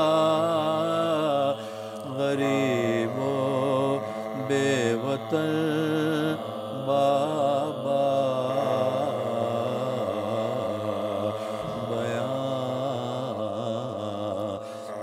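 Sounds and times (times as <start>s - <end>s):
men chanting an elegy: 0.0s - 15.0s.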